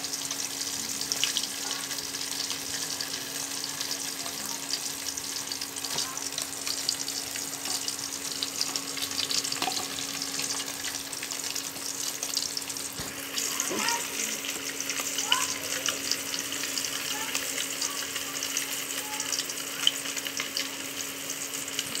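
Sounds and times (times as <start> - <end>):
food sizzling in hot oil: 0.0 - 22.0.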